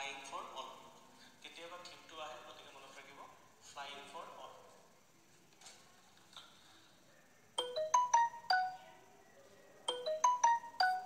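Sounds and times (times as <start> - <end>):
phone ringtone chime tune: 7.6 - 8.8, 9.9 - 11.0.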